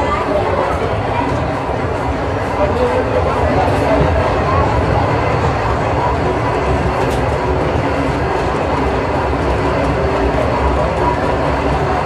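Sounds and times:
indistinct crowd chatter: 0:00.0 - 0:12.0
rumbling mall ambience: 0:00.0 - 0:12.0.

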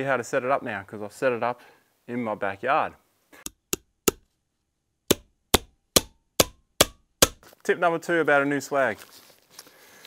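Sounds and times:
sharp knocks: 0:03.4 - 0:04.3, 0:05.1 - 0:07.4.

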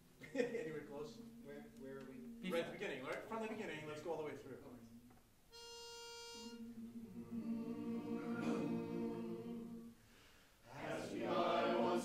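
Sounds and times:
pitch pipe note: 0:04.6 - 0:07.4
men humming a held chord: 0:04.7 - 0:10.0.

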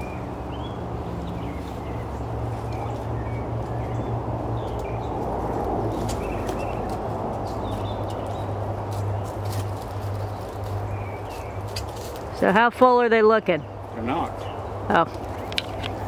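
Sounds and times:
honeybees humming: 0:00.0 - 0:16.0
small birds chirping: 0:00.0 - 0:16.0.

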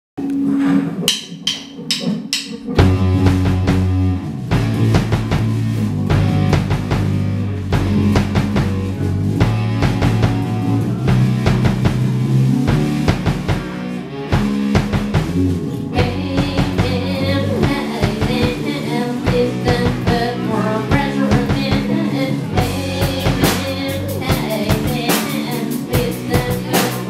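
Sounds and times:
live rock band playing: 0:00.4 - 0:27.0.

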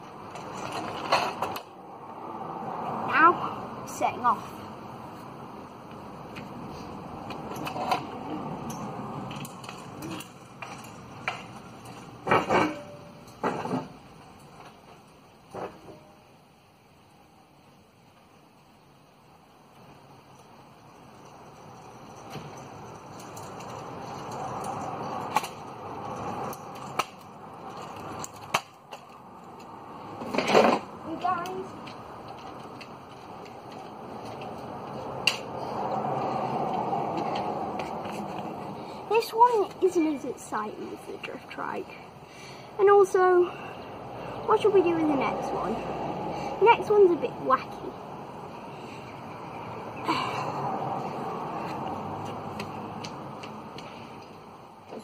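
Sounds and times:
scooter wheels rolling on tarmac: 0:00.0 - 0:16.2, 0:19.5 - 0:55.0.

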